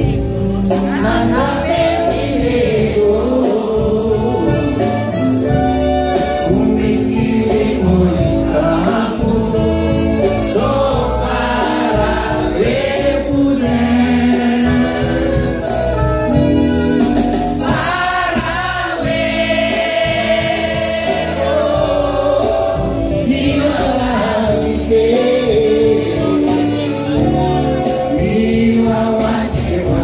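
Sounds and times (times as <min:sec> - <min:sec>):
voices singing together: 0:00.0 - 0:05.2, 0:06.1 - 0:16.0, 0:17.0 - 0:30.0
live band music: 0:00.0 - 0:30.0.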